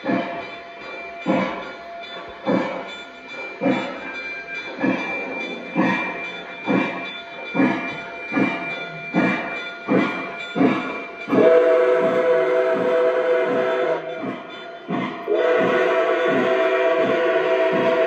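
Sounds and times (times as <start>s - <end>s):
steam locomotive chuffing: 0.0s - 18.0s.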